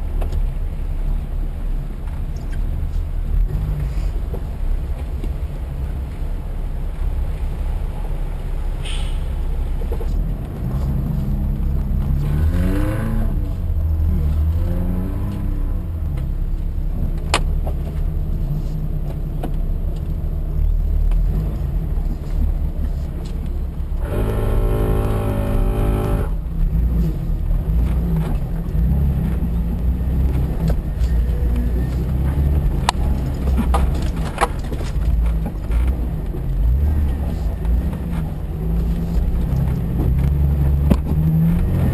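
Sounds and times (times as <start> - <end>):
steady pitched tone: 24.0 - 26.5
engine running under load: 24.0 - 41.9.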